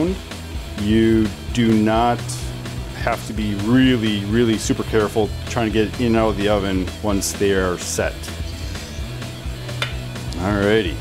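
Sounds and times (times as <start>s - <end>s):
background music with bass line: 0.0s - 11.0s.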